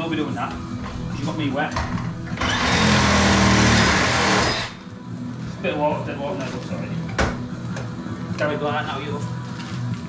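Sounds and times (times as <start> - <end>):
cordless drill running: 2.4 - 4.8.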